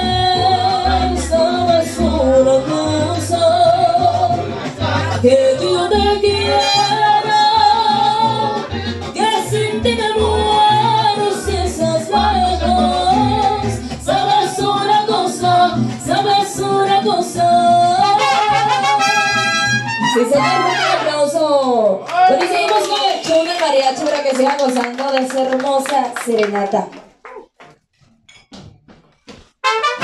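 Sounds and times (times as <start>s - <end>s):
strummed guitars: 0.0s - 21.0s
plucked bass guitar: 0.0s - 21.1s
trumpets playing melody: 6.5s - 7.2s, 18.0s - 21.3s, 29.6s - 30.0s.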